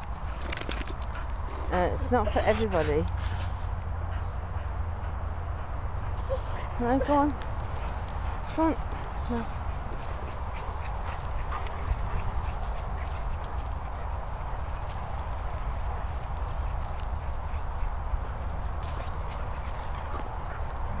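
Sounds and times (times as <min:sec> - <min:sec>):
dogs scuffling on grass: 0:00.2 - 0:04.4, 0:06.6 - 0:21.0.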